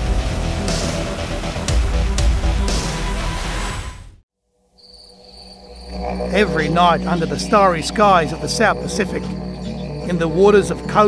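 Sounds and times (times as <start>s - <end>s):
loud music: 0.0s - 4.2s
crickets chirping: 4.5s - 11.0s
low hum: 5.5s - 11.0s.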